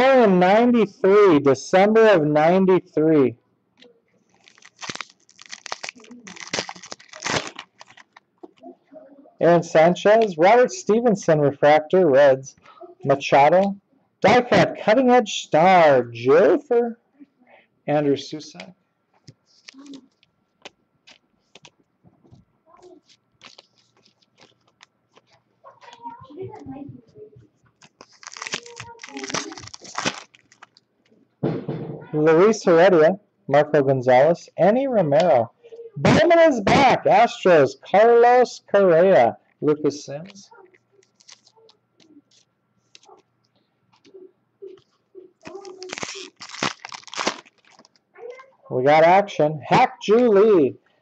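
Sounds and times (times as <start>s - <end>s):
foil wrapper tearing and crinkling: 4.3s - 8.2s, 23.0s - 25.9s, 27.8s - 30.8s, 41.0s - 41.7s, 45.4s - 48.0s
trading cards being handled: 4.3s - 8.6s, 19.2s - 26.6s, 27.5s - 30.8s, 40.2s - 43.3s, 43.9s - 48.0s.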